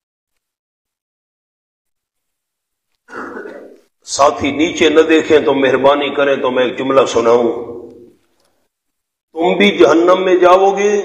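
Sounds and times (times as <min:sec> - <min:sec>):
man clearing his throat: 0:03.1 - 0:03.9.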